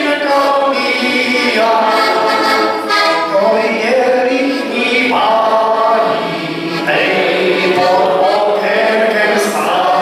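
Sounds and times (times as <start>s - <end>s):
button accordion: 0.0s - 10.0s
man singing folk song: 0.0s - 10.0s.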